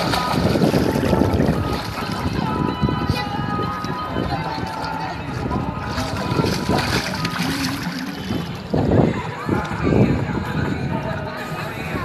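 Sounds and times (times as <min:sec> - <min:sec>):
pool water splashing: 0:00.0 - 0:09.9
children's voices: 0:03.0 - 0:04.0.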